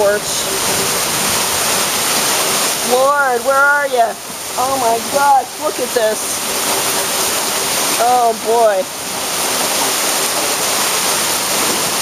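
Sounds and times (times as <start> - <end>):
torrential rain: 0.0 - 12.0
water pouring off a roof: 0.0 - 12.0.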